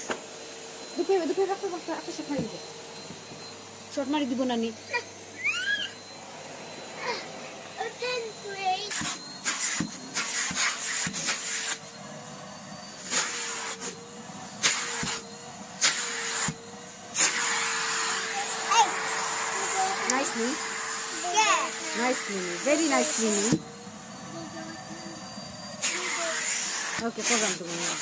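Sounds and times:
vacuum cleaner hum: 0:00.0 - 0:28.0
vacuum suction rushing over carpet: 0:00.0 - 0:28.0
child's voice: 0:07.0 - 0:09.1, 0:18.3 - 0:20.2, 0:21.1 - 0:22.2, 0:26.0 - 0:26.5.

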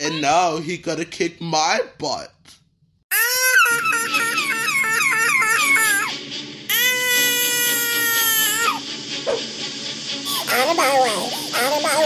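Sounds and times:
cartoon crying wail: 0:03.1 - 0:06.1, 0:06.7 - 0:08.8.

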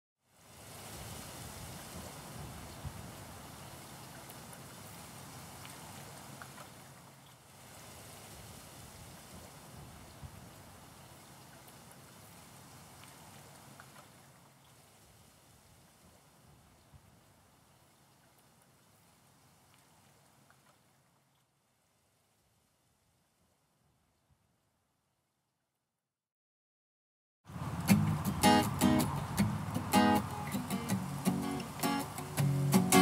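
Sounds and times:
soft hiss of moving water: 0:00.2 - 0:25.2, 0:27.5 - 0:33.0.

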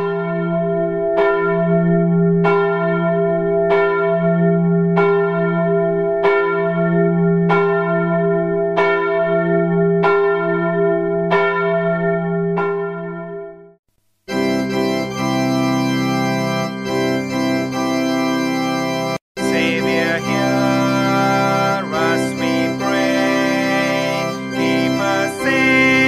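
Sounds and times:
church bell tolling slowly: 0:00.0 - 0:26.0.

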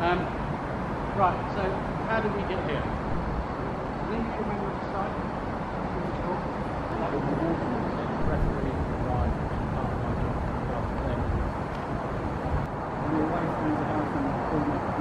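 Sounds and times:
low outdoor rumble: 0:00.0 - 0:15.0
faint indistinct voices: 0:05.9 - 0:15.0.

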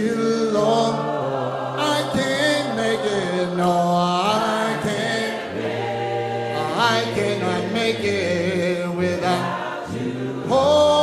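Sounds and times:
man singing lead: 0:00.0 - 0:05.5, 0:06.5 - 0:11.0
group singing held chords: 0:00.0 - 0:11.0.

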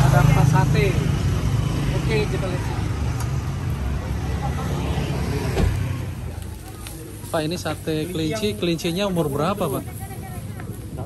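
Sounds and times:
faint voices: 0:00.0 - 0:11.0
passing vehicles rumble: 0:00.0 - 0:11.0.

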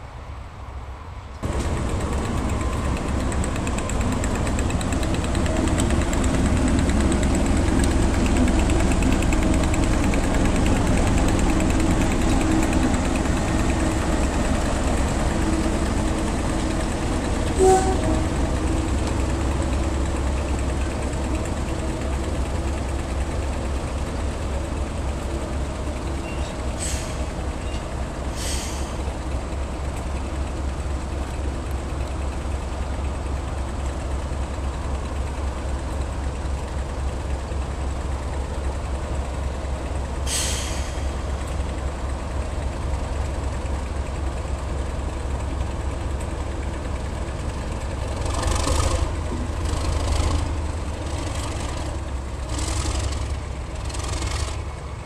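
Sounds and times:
diesel locomotive engine running: 0:00.0 - 0:55.0.

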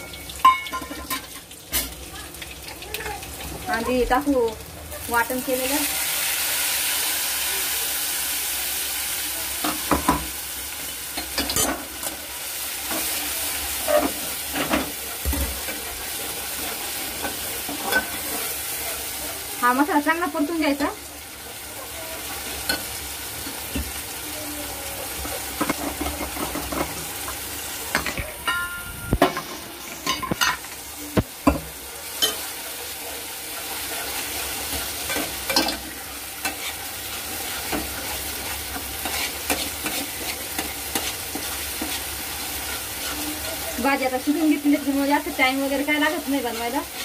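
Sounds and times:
oil sizzling in a pan: 0:00.0 - 0:47.0
spatula scraping a pan: 0:12.8 - 0:19.1, 0:25.1 - 0:27.3, 0:32.1 - 0:47.0.

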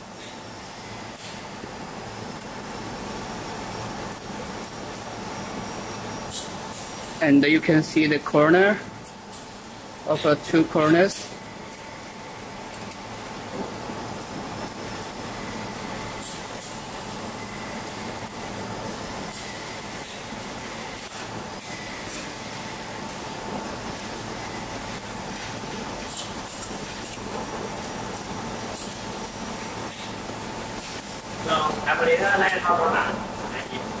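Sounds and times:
steady mechanical hum: 0:00.0 - 0:34.0.

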